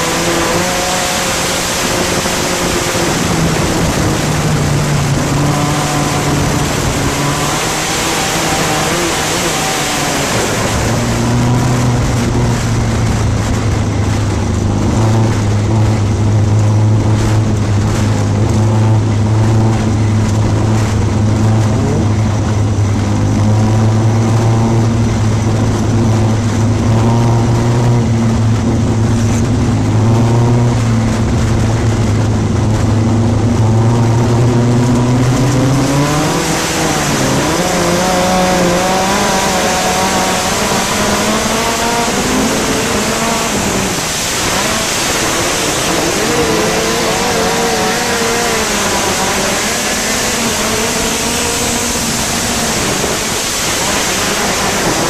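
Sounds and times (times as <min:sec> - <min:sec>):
race car engine: 0:00.0 - 0:55.0
wind noise rushing: 0:00.0 - 0:55.0.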